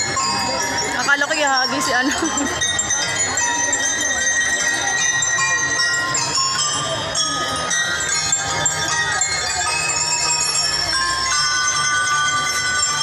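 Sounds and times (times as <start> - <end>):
bell lyre melody: 0.0 - 13.0.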